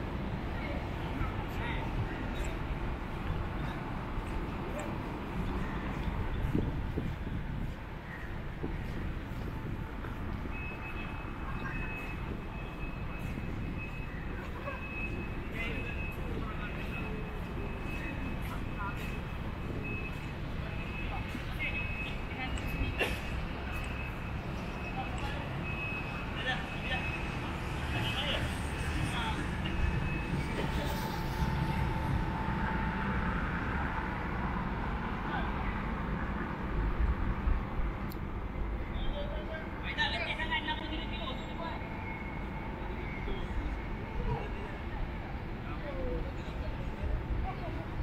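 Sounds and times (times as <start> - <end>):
low rumble of road traffic: 0.0 - 48.0
faint voices: 0.1 - 36.6, 38.4 - 48.0.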